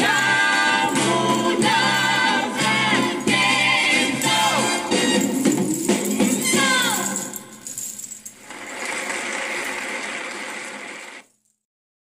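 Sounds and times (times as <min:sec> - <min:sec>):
sequins and beads jingling: 0:00.0 - 0:08.8.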